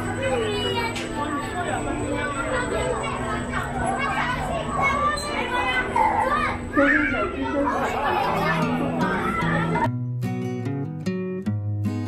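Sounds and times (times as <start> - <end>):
adult voices: 0.0 - 9.9
children chattering and calling out: 0.0 - 9.9.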